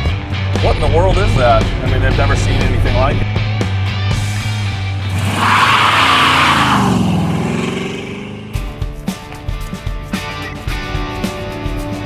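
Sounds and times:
background music: 0:00.0 - 0:12.0
car driving by: 0:00.7 - 0:09.0.

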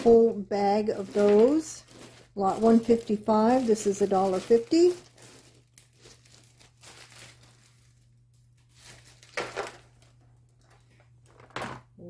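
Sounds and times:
plastic bag crinkling: 0:00.0 - 0:11.6.

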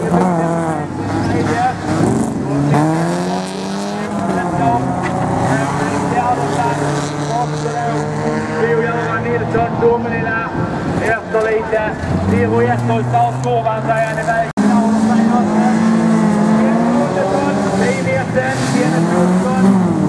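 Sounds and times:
race car engines revving: 0:00.0 - 0:20.0.

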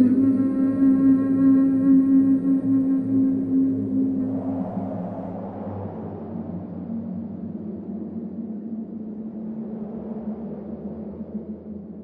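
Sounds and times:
low instrumental drone: 0:00.0 - 0:05.5.

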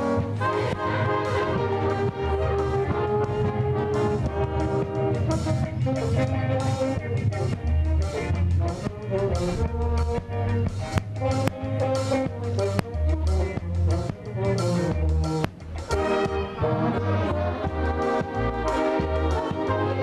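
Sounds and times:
brass band playing slow chords: 0:00.0 - 0:20.0.

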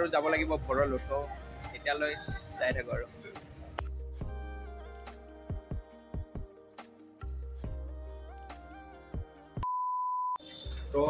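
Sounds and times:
man speaking: 0:00.0 - 0:03.4
background music: 0:00.0 - 0:09.7, 0:10.4 - 0:11.0
steady pure beep: 0:09.6 - 0:10.4.

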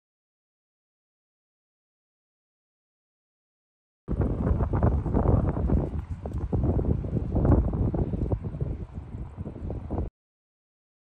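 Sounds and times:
wind buffeting microphone: 0:04.1 - 0:10.1.

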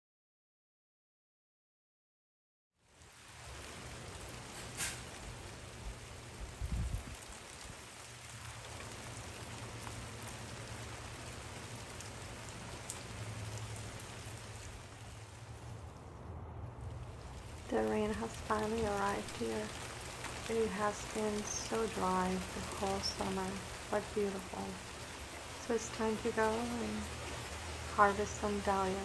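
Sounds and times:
rain falling: 0:02.8 - 0:29.0.

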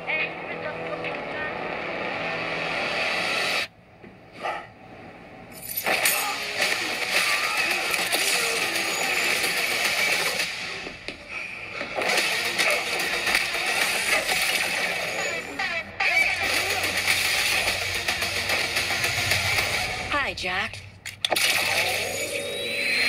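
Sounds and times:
trailer music: 0:16.4 - 0:20.4.

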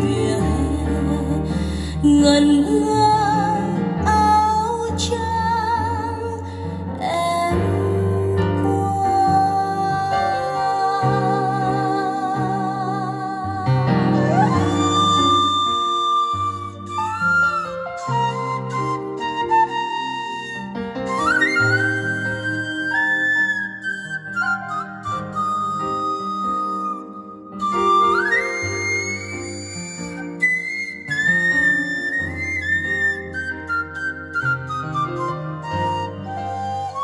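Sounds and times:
flute-like lead melody: 0:00.0 - 0:37.0.

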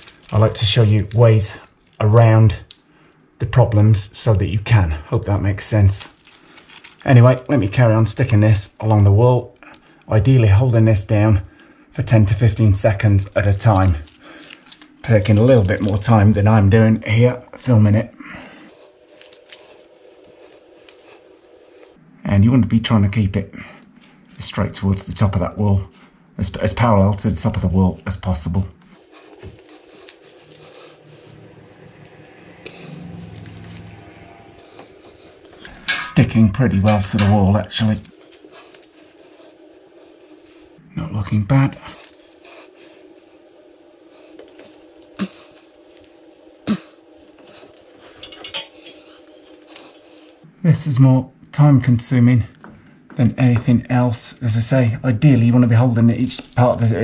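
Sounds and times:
faint steady hum: 0:00.0 - 0:57.0
rustling of hands on strip: 0:28.8 - 0:31.5, 0:36.8 - 0:40.7.

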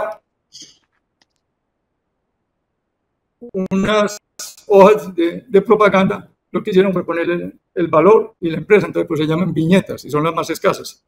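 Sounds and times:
faint clicks: 0:00.6 - 0:01.5.

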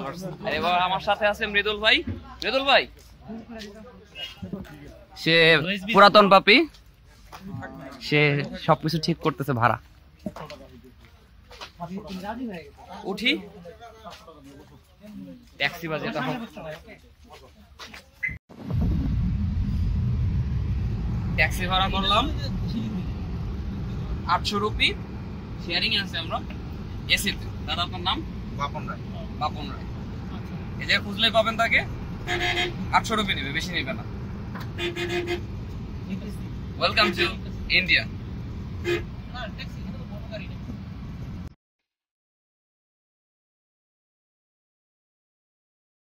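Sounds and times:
car engine and road noise: 0:00.0 - 0:14.3, 0:17.8 - 0:41.5.

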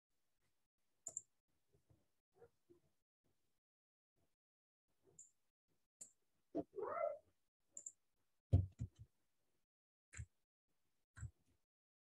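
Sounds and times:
cat meowing: 0:06.7 - 0:07.2.

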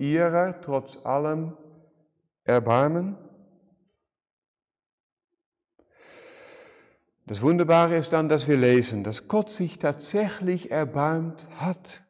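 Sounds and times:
man's quiet in-breath: 0:05.8 - 0:07.1.

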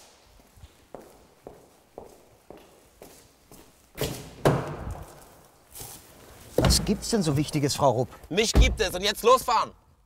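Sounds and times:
footsteps on concrete floor: 0:00.0 - 0:07.0.

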